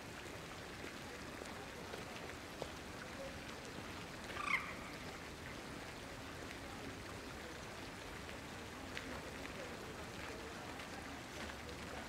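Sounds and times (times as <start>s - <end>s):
fountain splashing into pond: 0.0s - 12.0s.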